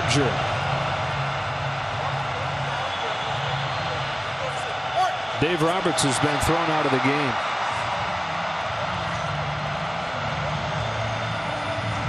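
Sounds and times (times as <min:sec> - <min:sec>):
stadium rushing noise: 0:00.0 - 0:12.0.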